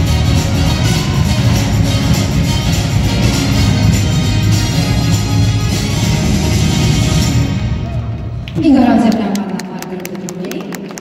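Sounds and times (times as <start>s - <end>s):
dance music: 0.0s - 9.0s.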